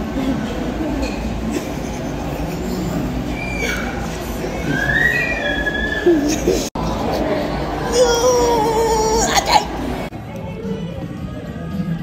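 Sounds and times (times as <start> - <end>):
high rising squeal: 3.2 - 6.2.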